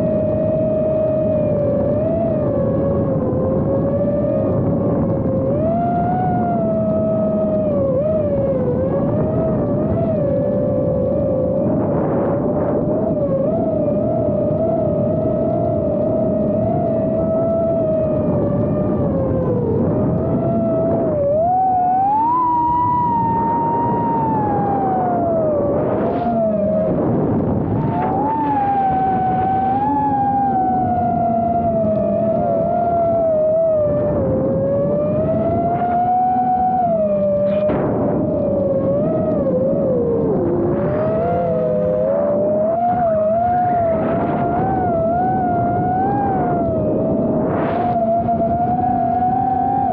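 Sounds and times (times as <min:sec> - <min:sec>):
low engine drone: 0:00.0 - 0:49.9
propeller whine: 0:00.0 - 0:49.9.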